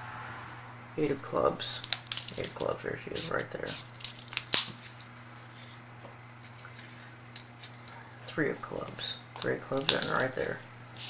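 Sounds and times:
steady low hum: 0.0s - 11.0s
marker pen and cards clicking: 8.8s - 10.6s.

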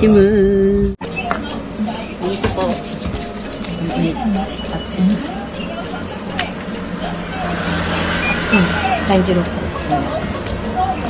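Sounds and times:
hands rubbing together: 2.2s - 4.5s.

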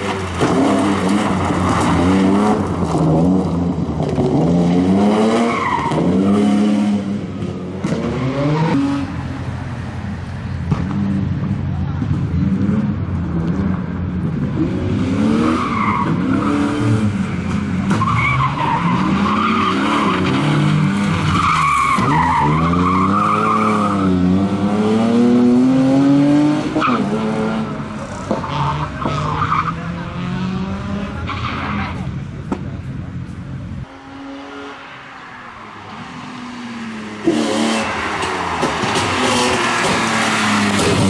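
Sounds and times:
rally car engine revving: 0.0s - 9.2s, 10.7s - 32.8s, 35.9s - 41.0s.

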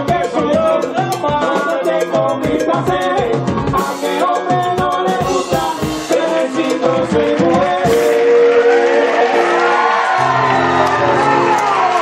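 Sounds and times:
latin band holding chord: 0.0s - 12.0s
people whooping: 8.0s - 12.0s.

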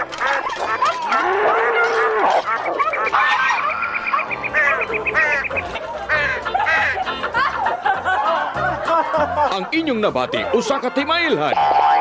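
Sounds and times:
squeaky animal calls: 0.0s - 7.0s.

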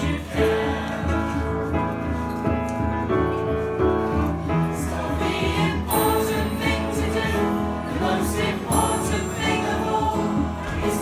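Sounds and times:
mixed choir singing: 0.0s - 2.0s, 4.6s - 11.0s
piano accompaniment: 0.0s - 11.0s.

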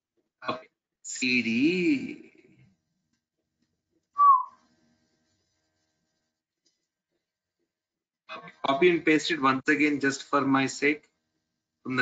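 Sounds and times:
high whistle-like tone: 4.2s - 4.6s.

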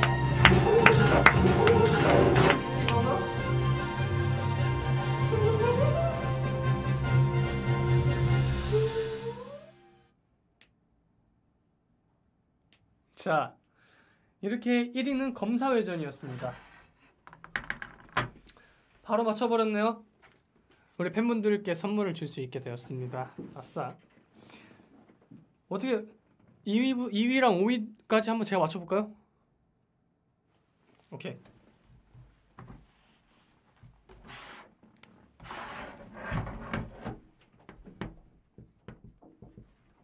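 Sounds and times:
whiteboard scraping on desk: 16.2s - 17.1s, 34.2s - 34.8s, 35.4s - 37.2s
clicks and knocks on desk: 17.3s - 18.4s.

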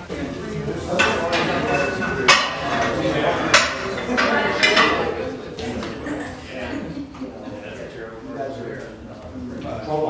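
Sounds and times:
people talking: 0.0s - 10.0s
metal weight plates clanking: 0.9s - 5.2s.

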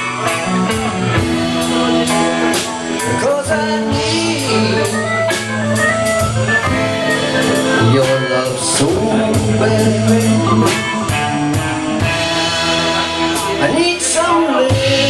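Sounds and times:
drum kit: 0.0s - 15.0s
electric guitar: 0.0s - 15.0s
rock band playing: 0.0s - 15.0s
man singing: 0.4s - 15.0s.

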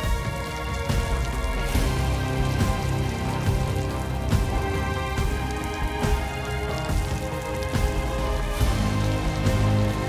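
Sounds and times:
film score music with low bass: 0.0s - 10.0s
heavy falling water: 0.0s - 10.0s.

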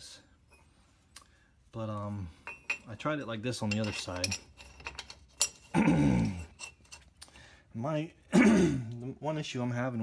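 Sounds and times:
man clearing his throat: 5.7s - 6.4s, 8.3s - 8.9s.

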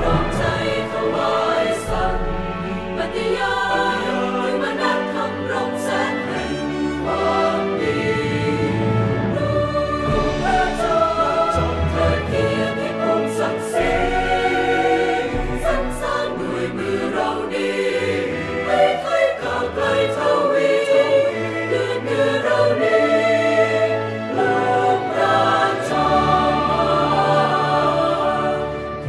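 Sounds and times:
choir singing sustained notes: 0.0s - 29.0s
instrumental accompaniment: 0.0s - 29.0s.

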